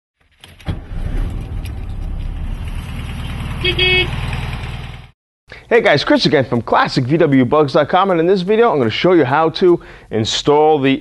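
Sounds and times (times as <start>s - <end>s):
car engine idling: 0.8s - 5.1s.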